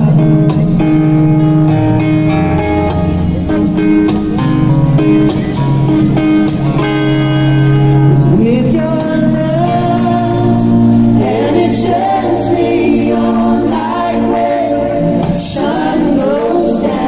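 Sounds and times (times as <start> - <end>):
person singing: 8.2 - 17.0.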